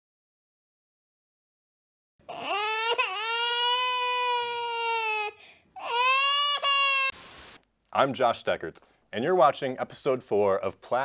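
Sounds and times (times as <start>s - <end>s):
burst of hiss: 6.7s - 7.6s.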